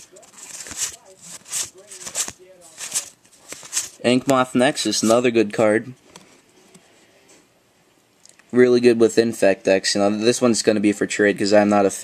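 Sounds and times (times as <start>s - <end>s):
cards being flipped: 0.0s - 5.3s.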